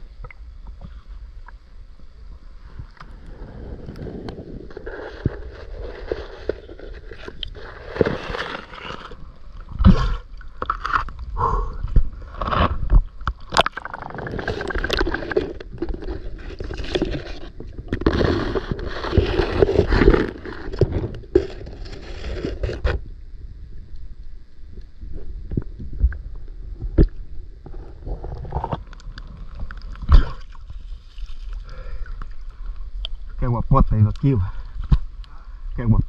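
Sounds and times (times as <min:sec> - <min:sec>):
water sloshing and gurgling: 0:00.0 - 0:23.1, 0:25.0 - 0:33.4.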